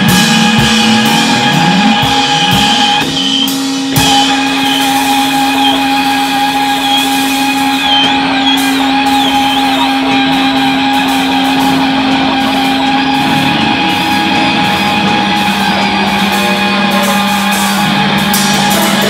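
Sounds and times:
held low note: 0.0 - 19.0
high guitar squeals: 0.0 - 19.0
noise improvisation din: 0.0 - 19.0.

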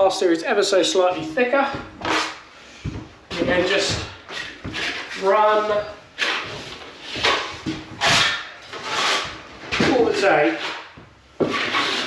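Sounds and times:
trowel scraping wet plaster: 6.2 - 9.4, 10.4 - 12.0.

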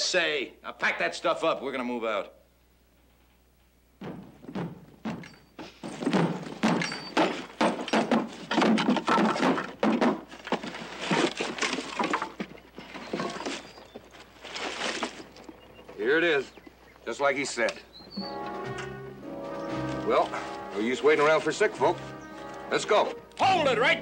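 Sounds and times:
gear thumping into wooden wagon: 4.0 - 16.0.

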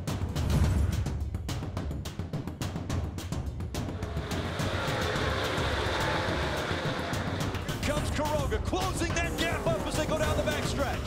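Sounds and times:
background music: 0.0 - 11.0
race truck engines at speed: 3.7 - 11.0.

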